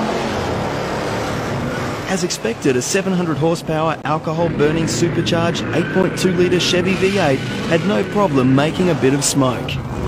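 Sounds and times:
engine at high revs: 4.2s - 10.0s
tyres spinning: 4.3s - 10.0s.

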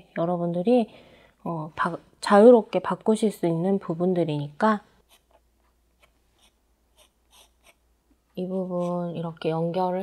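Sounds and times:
pencil scratching on paper: 5.0s - 5.4s, 6.0s - 7.8s.

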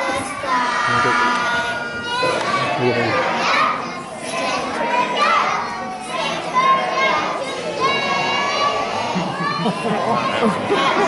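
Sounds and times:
young children talking and calling out: 0.0s - 11.0s.

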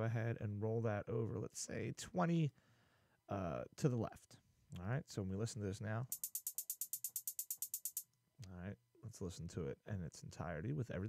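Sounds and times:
drum machine hi-hat ticks: 6.1s - 8.0s.

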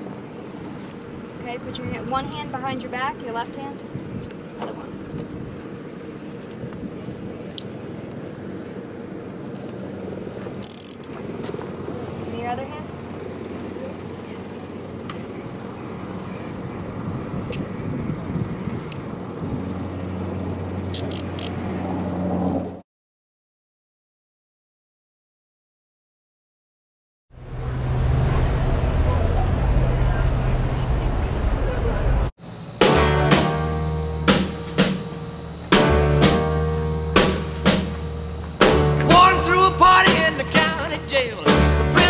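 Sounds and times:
handcuffs clicking shut: 10.5s - 11.1s, 20.9s - 21.6s
low machine hum: 27.4s - 32.7s, 33.6s - 42.0s.

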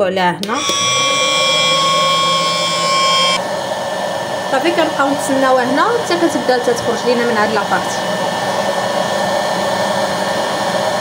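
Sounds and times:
popcorn maker fan whining: 0.4s - 11.0s.

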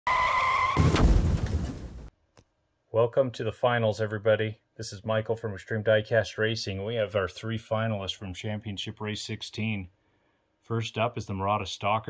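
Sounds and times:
car tyre screeching: 0.0s - 1.0s
sharp crack: 0.6s - 2.1s.

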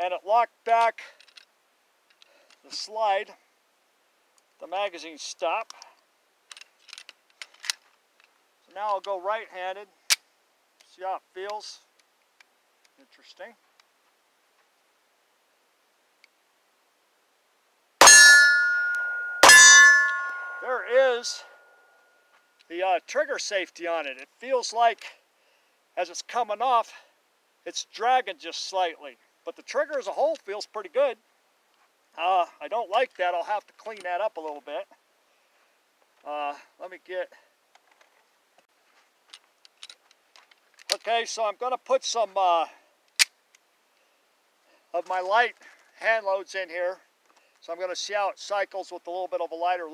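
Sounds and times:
metallic ringing: 18.0s - 22.3s
pistol metallic click: 43.1s - 43.4s.

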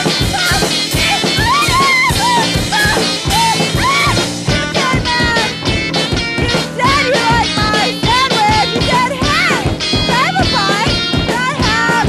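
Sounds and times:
drums: 0.0s - 12.0s
electric guitar: 0.0s - 12.0s
punk rock song: 0.0s - 12.0s
woman singing: 0.0s - 12.0s.

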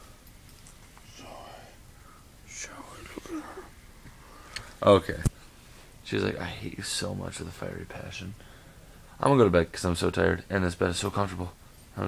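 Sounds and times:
man whispering: 1.0s - 3.8s.

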